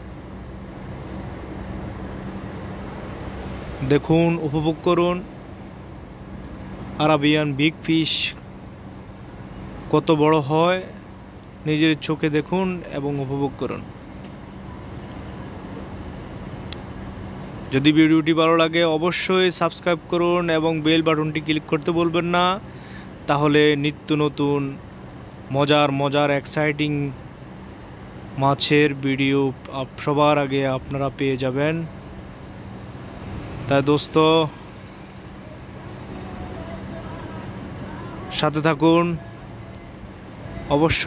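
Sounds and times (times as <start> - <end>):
faint constant tone: 0.0 - 41.0
faint hum: 0.0 - 41.0
low rumble and hiss: 0.0 - 41.0.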